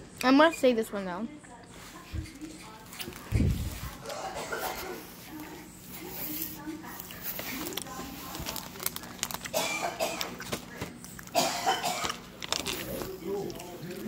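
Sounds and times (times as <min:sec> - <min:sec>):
packaging and paper crinkling: 0:06.0 - 0:09.6, 0:12.0 - 0:14.0.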